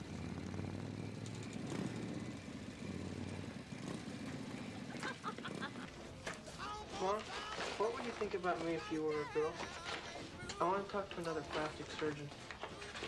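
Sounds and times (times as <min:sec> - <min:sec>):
vehicle engines rumbling: 0:00.0 - 0:13.0
faint voices: 0:04.6 - 0:13.0.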